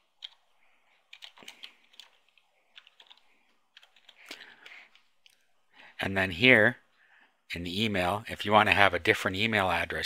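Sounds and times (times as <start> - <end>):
typing on computer keyboard: 1.0 - 5.0.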